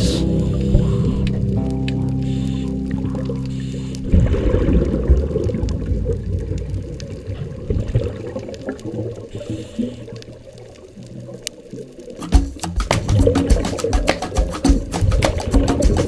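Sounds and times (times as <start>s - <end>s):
muffled underwater rush and bubbles: 0.0s - 16.0s.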